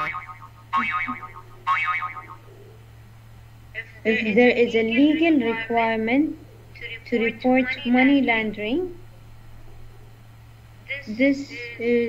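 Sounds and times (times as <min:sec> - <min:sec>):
short warbling tones: 0:00.0 - 0:02.5
steady low hum: 0:00.0 - 0:12.0.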